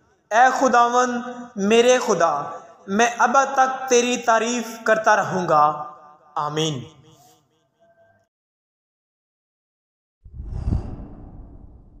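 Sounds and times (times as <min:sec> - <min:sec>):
whoosh with deep rumble: 0:10.3 - 0:12.0.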